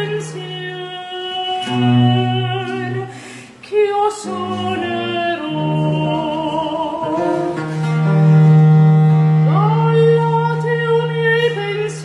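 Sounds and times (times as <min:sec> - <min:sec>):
woman singing: 0:00.0 - 0:07.6, 0:09.5 - 0:12.0.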